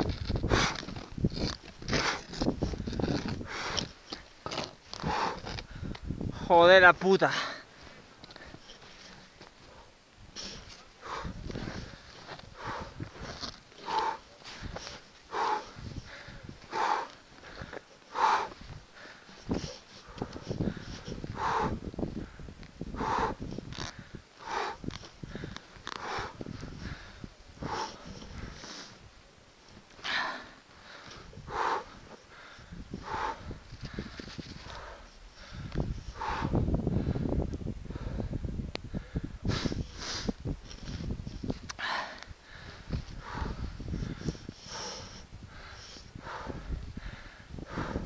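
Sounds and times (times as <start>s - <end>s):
wind buffeting microphone: 0.0s - 7.2s, 7.8s - 29.2s, 29.8s - 48.0s
heavy breathing: 0.3s - 6.5s, 7.2s - 29.0s, 29.8s - 41.1s, 41.7s - 48.0s.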